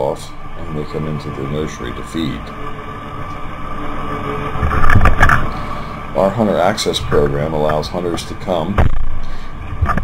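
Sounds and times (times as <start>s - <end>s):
tractor engine and mower running: 0.2s - 10.0s.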